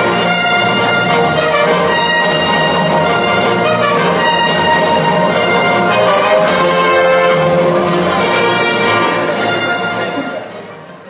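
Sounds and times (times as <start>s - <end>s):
orchestral music over sound system: 0.0s - 11.0s.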